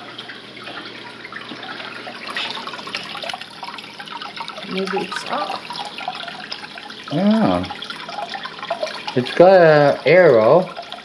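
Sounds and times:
water trickling and splashing: 0:00.0 - 0:11.0.

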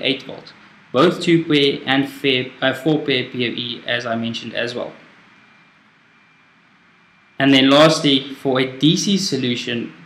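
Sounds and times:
faint room tone hiss: 0:00.0 - 0:10.0.

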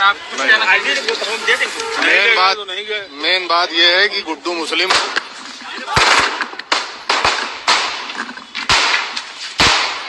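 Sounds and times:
pistol shots: 0:06.0 - 0:10.0.

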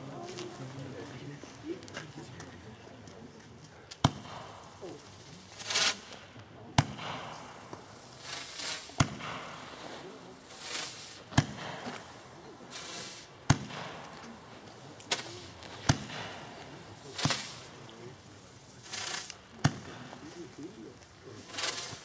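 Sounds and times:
firework whoosh and bang: 0:04.0 - 0:04.8, 0:06.8 - 0:14.4, 0:15.0 - 0:17.8.

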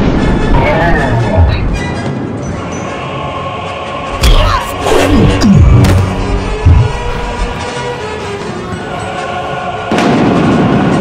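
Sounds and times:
dramatic soundtrack music: 0:00.0 - 0:11.0
heavy low rumble: 0:04.1 - 0:07.7
loud boom impact: 0:05.2 - 0:07.4.

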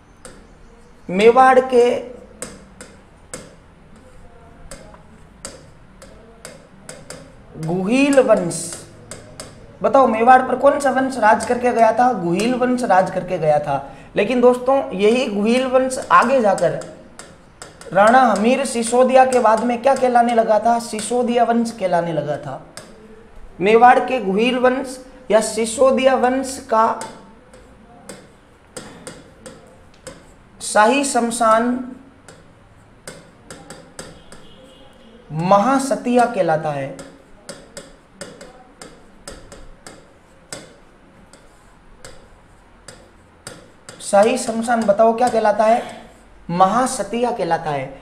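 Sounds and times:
stylus tapping on screen: 0:00.1 - 0:47.7.

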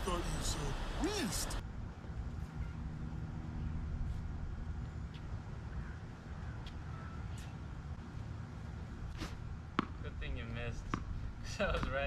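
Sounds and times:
tennis ball bouncing on hard court: 0:09.2 - 0:10.0, 0:10.8 - 0:12.0.

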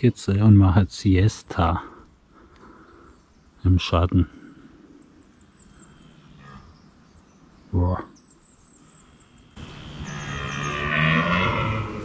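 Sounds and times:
deer stag roaring: 0:09.6 - 0:12.0.

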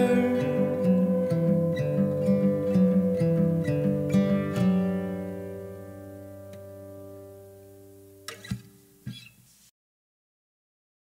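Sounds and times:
guitar chord: 0:00.0 - 0:08.5.

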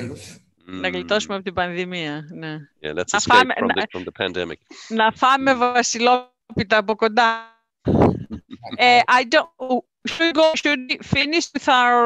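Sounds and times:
voices over a video call: 0:00.0 - 0:12.0
short rasping vocal sound: 0:00.1 - 0:01.4, 0:02.8 - 0:04.6, 0:08.2 - 0:09.0.

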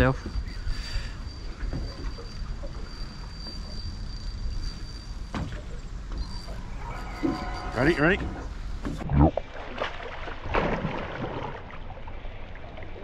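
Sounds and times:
faint high whine: 0:00.0 - 0:08.8
boat low rumble and hiss: 0:00.0 - 0:13.0.

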